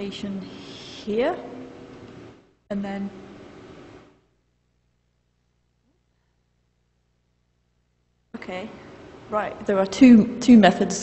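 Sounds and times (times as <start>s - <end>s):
person speaking with room echo: 0.0s - 3.4s, 8.4s - 11.0s
faint steady hum: 0.0s - 11.0s.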